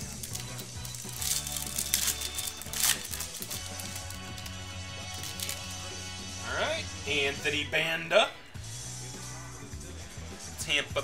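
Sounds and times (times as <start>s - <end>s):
plastic wrapper crinkling and tearing: 0.0s - 5.8s
background music: 0.0s - 11.0s.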